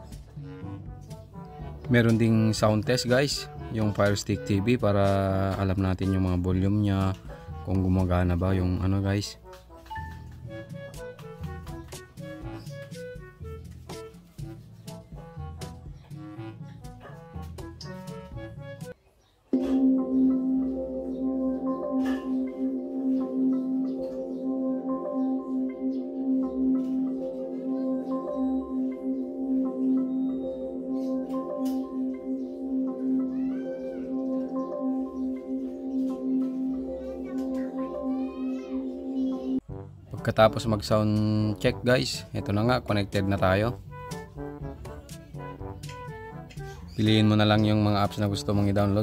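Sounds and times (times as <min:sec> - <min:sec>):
instrumental tune through tv speakers: 0:00.0 - 0:08.4, 0:09.1 - 0:40.3, 0:43.6 - 0:49.0
chime-like music through tv speakers: 0:19.6 - 0:39.6.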